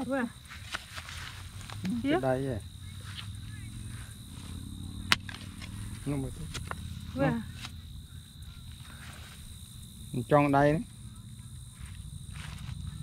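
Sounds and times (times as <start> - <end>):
woman speaking: 0.0 - 0.4, 1.8 - 4.2, 7.1 - 7.6.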